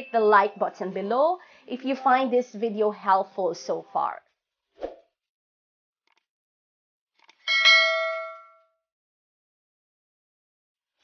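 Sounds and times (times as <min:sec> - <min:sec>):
bright bell ding: 0:07.5 - 0:08.7.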